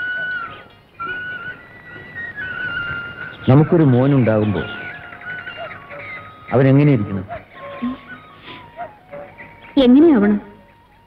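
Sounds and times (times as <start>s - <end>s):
flute melody: 0.0s - 11.0s.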